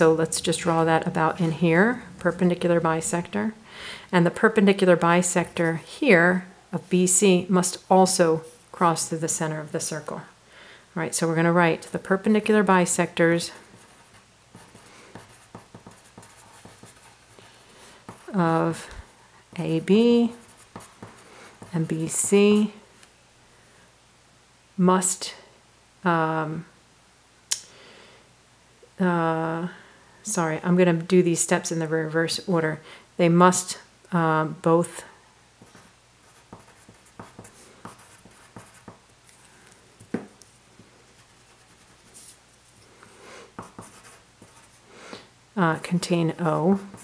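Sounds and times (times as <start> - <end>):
pencil writing on paper: 13.6 - 17.4, 19.6 - 22.4, 35.6 - 39.0, 43.5 - 44.8, 46.4 - 47.0.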